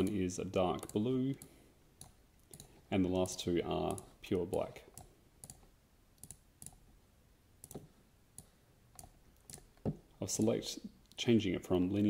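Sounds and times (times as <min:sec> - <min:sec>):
computer mouse clicks: 0:00.0 - 0:02.8, 0:03.8 - 0:06.8, 0:07.6 - 0:09.8.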